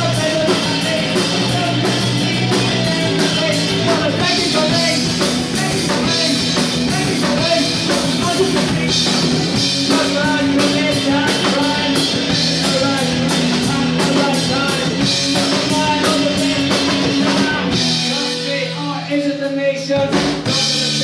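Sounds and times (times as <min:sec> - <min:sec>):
electric guitars: 0:00.0 - 0:19.1
drum kit beat: 0:00.0 - 0:21.0.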